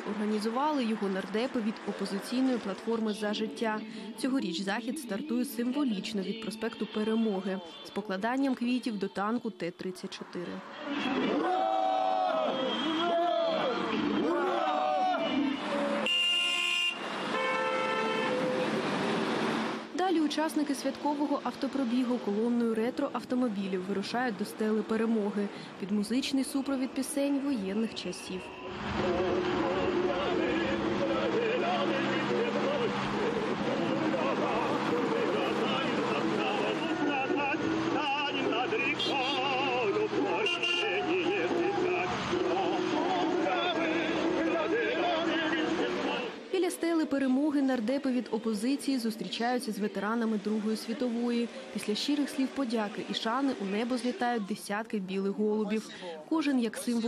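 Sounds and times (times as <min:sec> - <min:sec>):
loud voice with drawn-out pitches: 0:00.0 - 0:11.7, 0:20.0 - 0:57.0
car horn blasts: 0:15.2 - 0:18.8, 0:35.7 - 0:39.5, 0:40.2 - 0:42.2
person singing with vibrato: 0:33.8 - 0:45.0.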